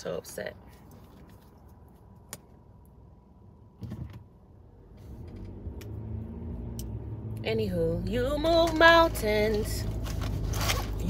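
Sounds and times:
low steady hum: 0.0 - 11.0
car cabin rumble: 6.7 - 11.0.

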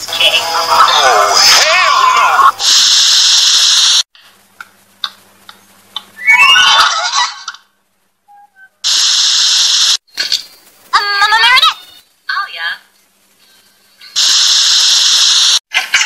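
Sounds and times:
tv static hiss: 0.0 - 16.0
cartoon character squealing: 6.2 - 7.5.

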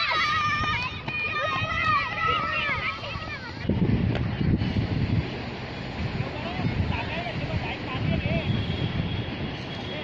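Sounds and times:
distant children calling: 0.0 - 3.7
wind noise on microphone: 0.3 - 9.9.

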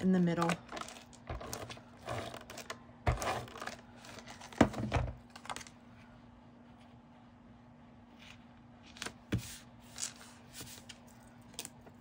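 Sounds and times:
paper rustling and scraping: 0.4 - 5.8, 8.2 - 11.2.

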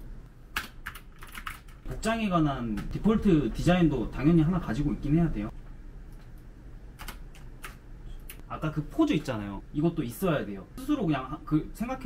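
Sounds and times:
keyboard typing: 0.5 - 1.9, 6.1 - 8.5.

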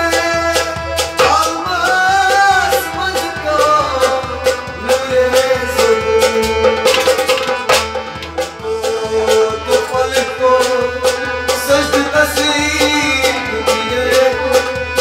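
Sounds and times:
harmonium sustained notes: 0.0 - 15.0
man singing: 0.0 - 15.0
percussion strokes: 0.0 - 15.0.

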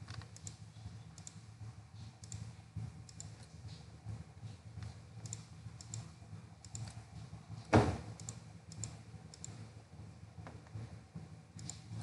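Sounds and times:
computer mouse clicking: 0.0 - 1.4, 2.0 - 3.8, 4.8 - 7.0, 8.2 - 9.6, 11.6 - 12.0
low steady hum: 0.0 - 12.0.

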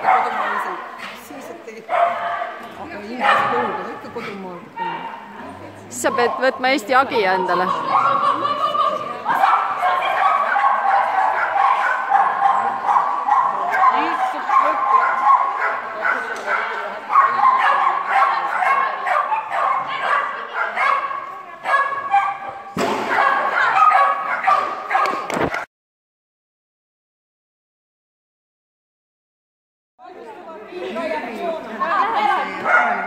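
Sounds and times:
dog barking and yipping: 9.3 - 22.5, 23.1 - 25.6, 32.7 - 33.0.

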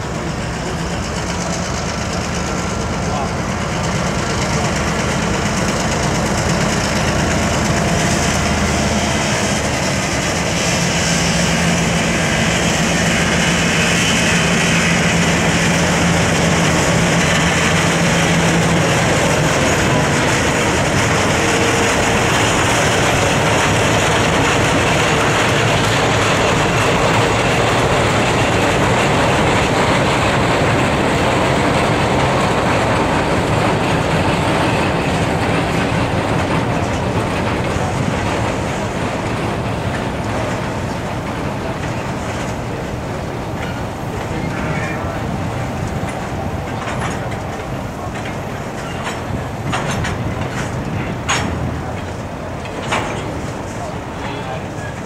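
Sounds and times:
diesel locomotive engine hum: 0.0 - 55.0
train wheels clacking on rails: 0.0 - 55.0.

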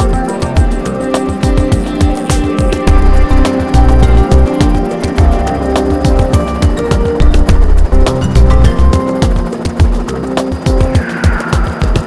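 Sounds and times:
background music with drum beat: 0.0 - 12.0.

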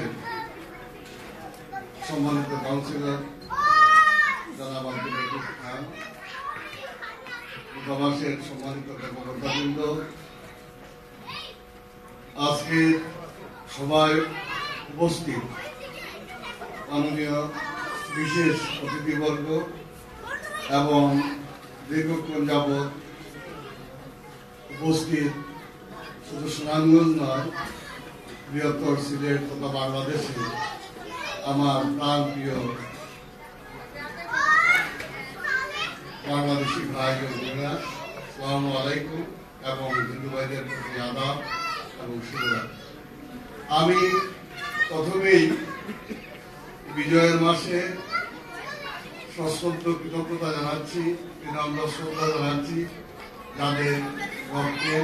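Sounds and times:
man speaking over loudspeakers: 0.0 - 0.2, 2.0 - 3.4, 4.1 - 6.0, 7.8 - 10.3, 12.4 - 15.6, 16.9 - 19.8, 20.6 - 23.1, 24.7 - 25.5, 26.2 - 27.6, 28.5 - 30.6, 31.3 - 33.0, 36.2 - 42.9, 43.7 - 45.7, 46.9 - 48.1, 49.3 - 55.0
crowd chatter: 0.0 - 55.0
hall background noise: 0.0 - 55.0.

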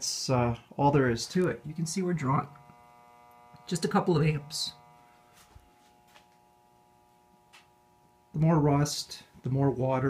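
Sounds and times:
battery charger electrical hum: 0.0 - 10.0.

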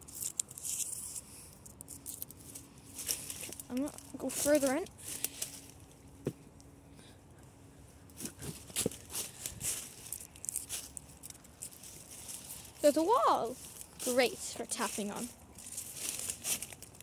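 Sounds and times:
footsteps crunching dry leaves: 0.0 - 6.1, 8.1 - 17.0.

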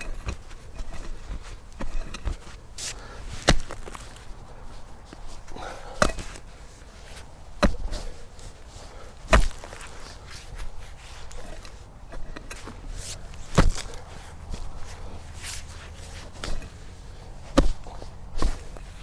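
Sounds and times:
pickaxe chopping into soil: 0.0 - 4.2, 5.6 - 6.4, 7.6 - 8.1, 9.2 - 14.7, 16.3 - 16.8, 17.5 - 19.0
light knocks and scrapes: 0.0 - 8.6, 9.2 - 19.0.

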